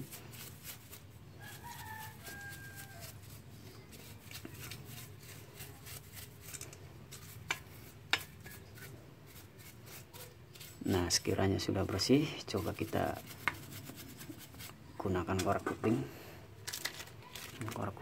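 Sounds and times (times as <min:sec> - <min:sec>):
paintbrush scrubbing metal: 0:00.0 - 0:16.1
rooster crowing: 0:01.4 - 0:03.4.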